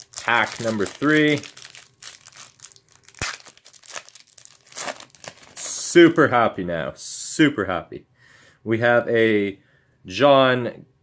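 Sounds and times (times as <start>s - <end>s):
foil wrapper tearing and crinkling: 0.0s - 5.8s.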